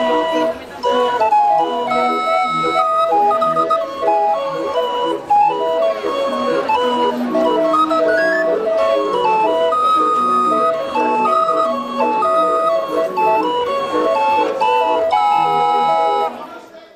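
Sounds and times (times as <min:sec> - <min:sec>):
barrel organ playing a tune: 0:00.0 - 0:16.5.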